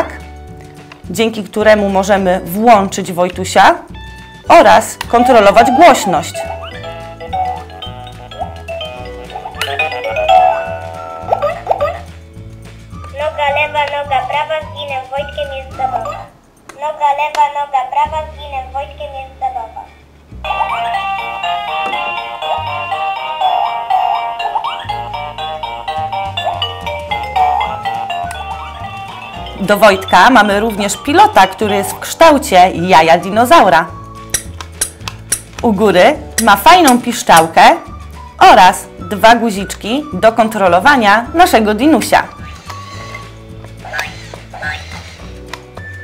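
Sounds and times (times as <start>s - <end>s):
toy electronic melody: 5.1s - 11.9s, 20.4s - 32.2s, 42.3s - 45.4s.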